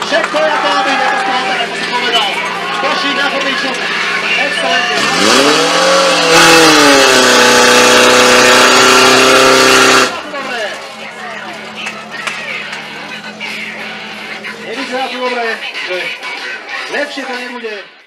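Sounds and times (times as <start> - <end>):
people shouting: 0.0 - 5.7
pump engine revving: 3.8 - 10.4.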